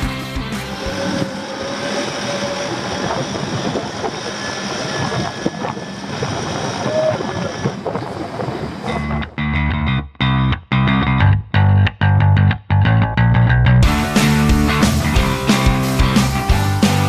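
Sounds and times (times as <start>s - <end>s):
steady rushing noise: 0.0s - 9.5s
off-road vehicle engine running: 0.0s - 12.0s.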